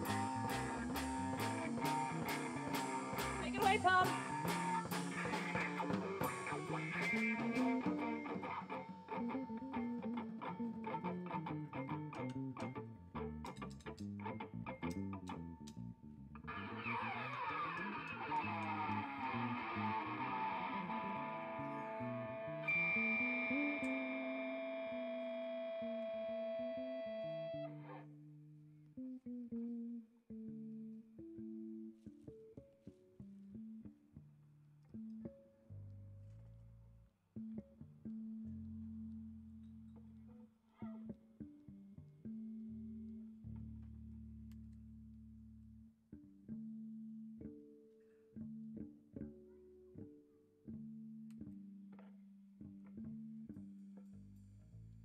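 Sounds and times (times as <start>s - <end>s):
live band backing: 0.0s - 8.7s
electric bass guitar solo: 0.0s - 28.1s, 29.0s - 32.7s, 34.8s - 46.6s.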